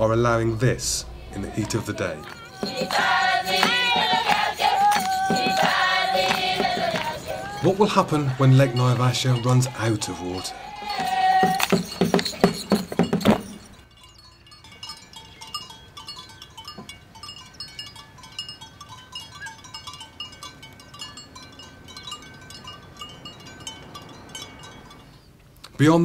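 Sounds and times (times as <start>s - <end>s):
cattle bells clinking: 0.0s - 26.0s
loud rhythmic clatter: 1.5s - 9.8s.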